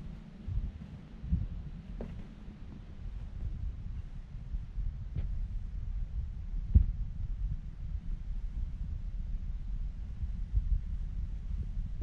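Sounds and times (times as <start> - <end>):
wind buffeting microphone: 0.0 - 12.0
dull thump: 2.0 - 2.4.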